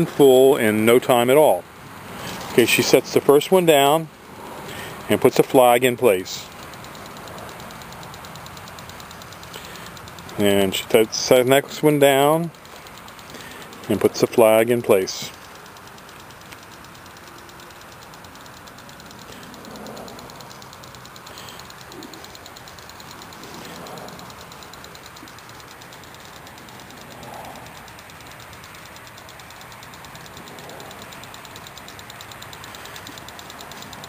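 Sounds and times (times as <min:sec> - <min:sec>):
distant road traffic hum: 0:00.0 - 0:34.0.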